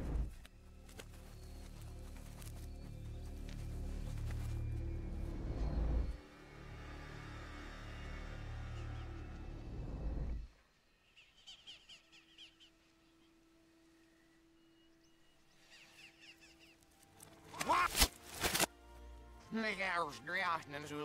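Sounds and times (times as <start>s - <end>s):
reversed orchestral music: 0.0s - 10.6s, 12.7s - 21.0s.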